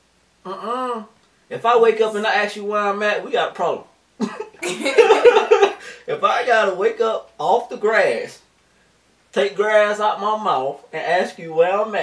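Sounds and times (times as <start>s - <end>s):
man and woman laughing: 4.2s - 6.0s.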